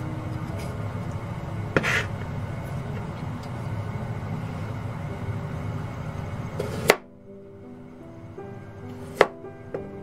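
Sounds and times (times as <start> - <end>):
background music: 0.0 - 10.0
knife chopping on cutting board: 1.8 - 2.1, 9.0 - 9.4.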